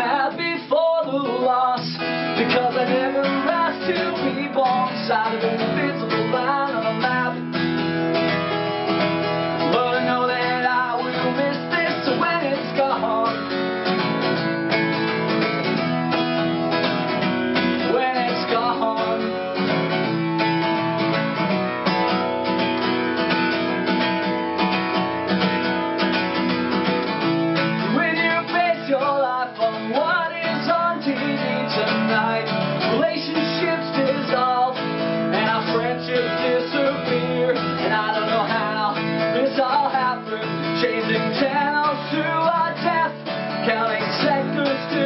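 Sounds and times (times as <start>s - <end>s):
acoustic guitar strumming: 0.0s - 45.0s.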